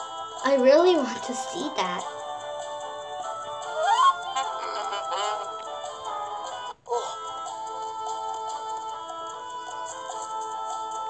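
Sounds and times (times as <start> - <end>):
background music: 0.0 - 11.0
cartoon voice sounds: 3.8 - 5.7.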